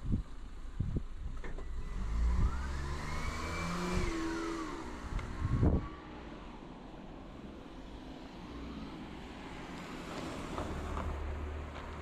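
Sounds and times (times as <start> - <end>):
car passing: 1.7 - 12.0.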